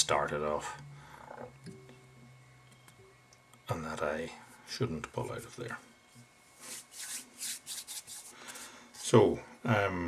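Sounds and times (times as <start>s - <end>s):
hands rubbing together: 6.6s - 9.2s.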